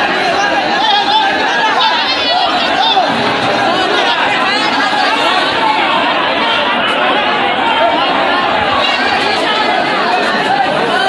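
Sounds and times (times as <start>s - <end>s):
crowd talking hubbub: 0.0s - 11.0s.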